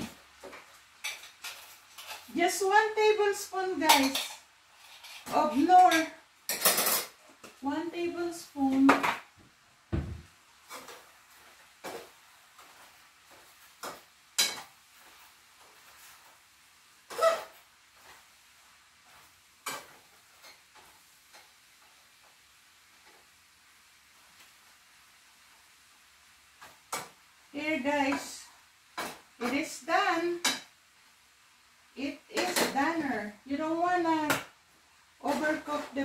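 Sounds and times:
utensil scraping frying pan: 0:00.0 - 0:02.7, 0:03.8 - 0:07.2
faint sizzle: 0:00.0 - 0:36.0.

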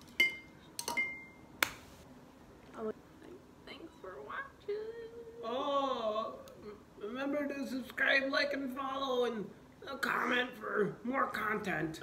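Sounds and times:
dry sharp snap: 0:01.6 - 0:01.9.

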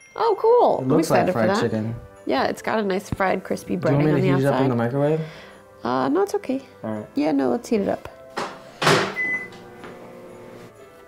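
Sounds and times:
microwave door knocking shut: 0:08.4 - 0:09.3
microwave keypad beep: 0:09.2 - 0:09.6.

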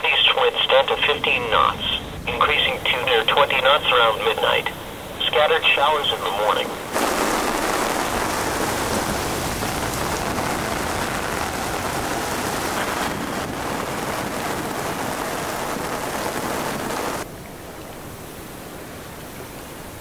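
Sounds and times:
rain falling on boat: 0:00.0 - 0:20.0
wind and sea rushing: 0:00.0 - 0:20.0.

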